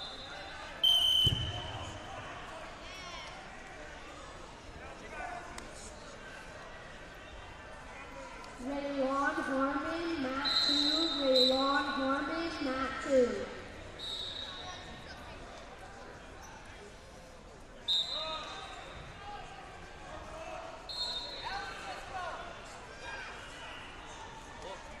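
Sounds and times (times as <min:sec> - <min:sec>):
referee's whistle blasts: 0:00.0 - 0:02.0, 0:10.4 - 0:11.9, 0:14.0 - 0:14.9, 0:17.9 - 0:19.0, 0:20.9 - 0:21.6
distant crowd voices: 0:00.0 - 0:25.0.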